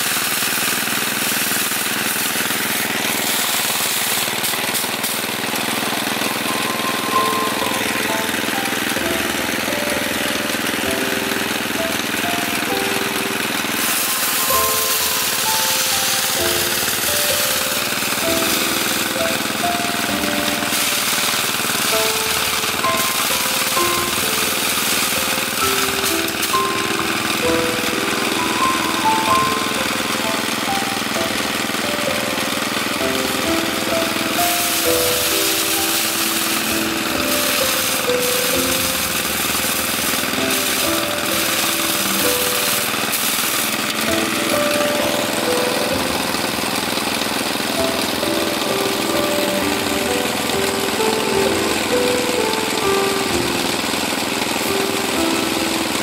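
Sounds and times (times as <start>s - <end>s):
rice threshing machine running: 0.0s - 56.0s
background music with short notes: 6.1s - 43.2s.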